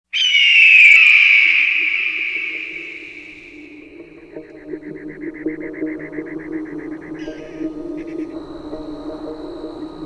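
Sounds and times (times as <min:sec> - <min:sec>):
high falling cry: 0:00.1 - 0:03.7.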